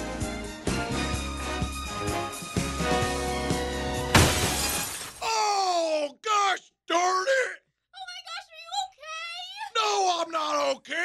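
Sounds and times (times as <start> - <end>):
loud crash: 4.1 - 5.2
person wailing in pain: 5.2 - 6.1, 9.7 - 10.8.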